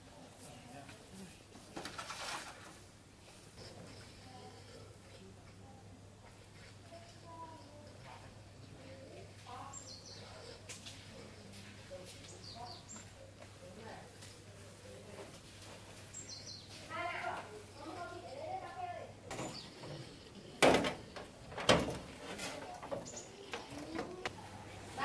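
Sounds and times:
rustling noise: 20.9 - 25.0.

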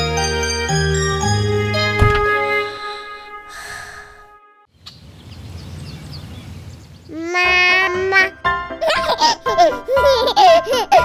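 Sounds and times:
cheerful children's music: 0.0 - 3.3, 7.2 - 11.0
baby giggling: 7.2 - 11.0.

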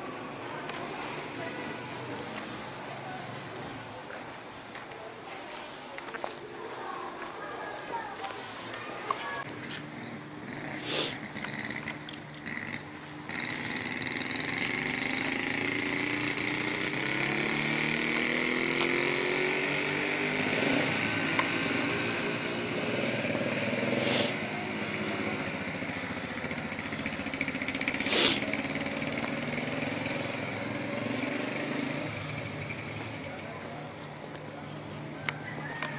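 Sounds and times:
vehicle engine running: 9.4 - 35.9.

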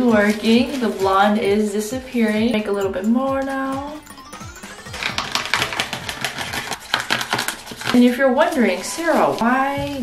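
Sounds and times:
brush tapping plastic tray: 5.0 - 10.0.

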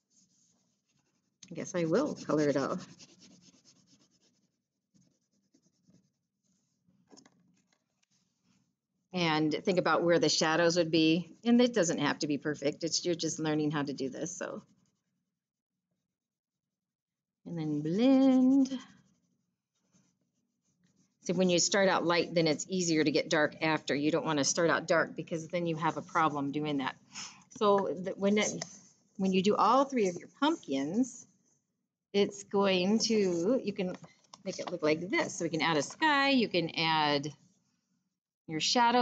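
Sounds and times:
crayon scribbling on paper: 0.0 - 6.8, 18.0 - 23.3.

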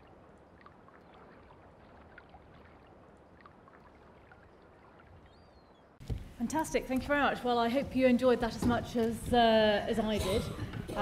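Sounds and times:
water rippling and lapping: 0.0 - 6.4.

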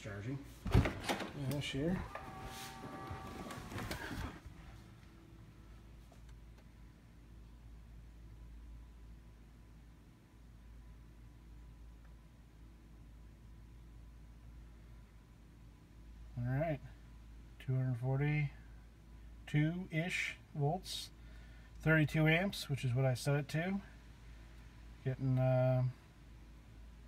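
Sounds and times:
faint steady low hum: 0.0 - 27.0
movement noise: 0.5 - 5.0.

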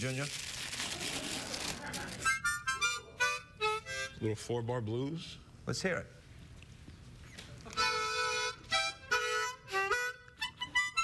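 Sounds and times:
harmonica playing blues: 2.1 - 4.4, 7.7 - 11.0.

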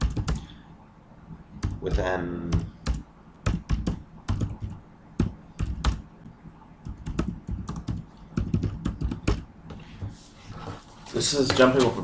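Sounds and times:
computer keyboard typing: 0.0 - 0.5, 1.6 - 6.1, 6.8 - 10.1.

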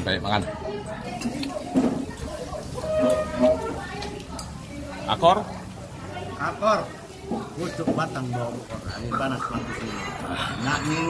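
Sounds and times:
indistinct talking: 0.0 - 11.0
plates and cutlery clinking: 1.1 - 4.1.

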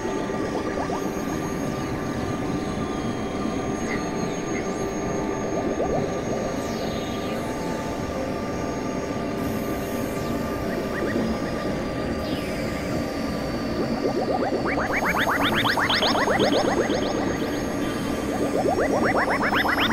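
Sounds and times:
electronic synthesizer drone: 0.0 - 19.9.

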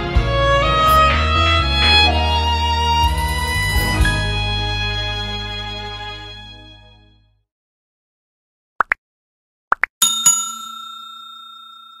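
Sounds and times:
notification bell ding: 10.0 - 12.0.

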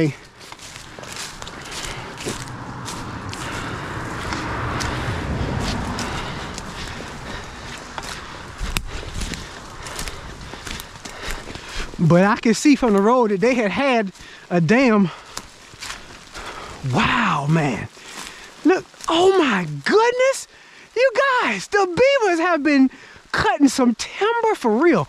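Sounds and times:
steady rushing noise: 0.0 - 19.4
brush and clothing rustling: 0.0 - 20.4
footsteps in grass and dry leaves: 0.0 - 24.0.

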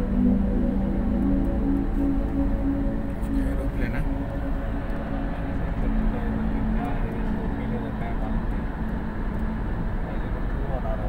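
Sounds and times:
car road and engine noise: 0.0 - 11.0
faint hum: 0.0 - 11.0.

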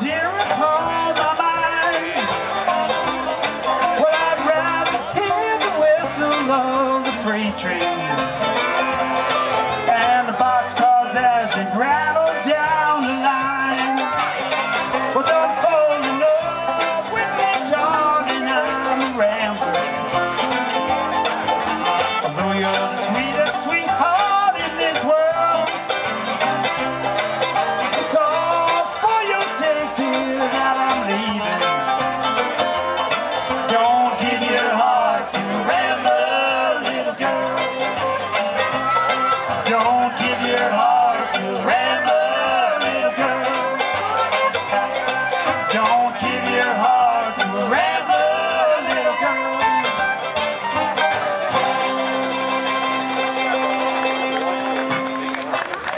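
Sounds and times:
bluegrass band playing: 0.0 - 55.9.

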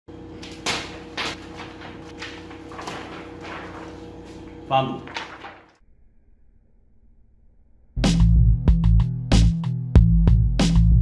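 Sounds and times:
plastic bags and paper rustling: 0.4 - 5.8.

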